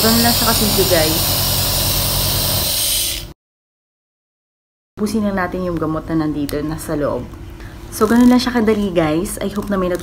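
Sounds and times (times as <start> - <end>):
nebulizer motor hum and hiss: 0.0 - 3.3.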